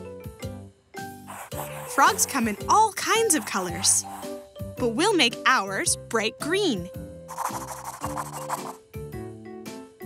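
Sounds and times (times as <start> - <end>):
light background music: 0.0 - 10.0
scribbling on paper: 1.3 - 4.4, 7.3 - 8.8.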